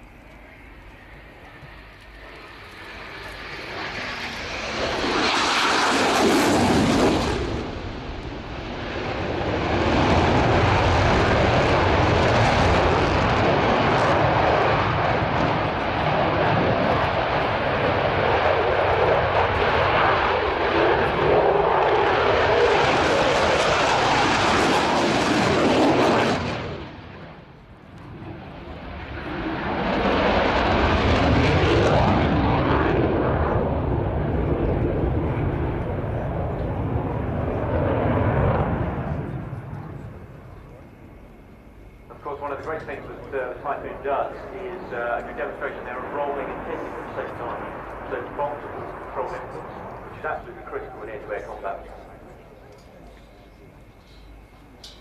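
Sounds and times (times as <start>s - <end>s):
loud hissing jet noise: 0.0s - 35.5s.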